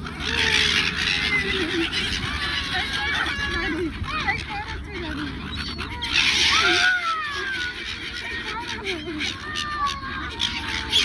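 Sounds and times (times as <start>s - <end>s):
gulls calling: 0.0s - 11.0s
harsh gull squawk: 0.0s - 11.0s.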